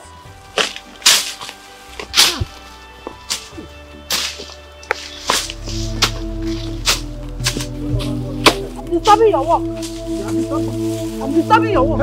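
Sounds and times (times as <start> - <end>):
music score with low drone: 0.0 - 12.0.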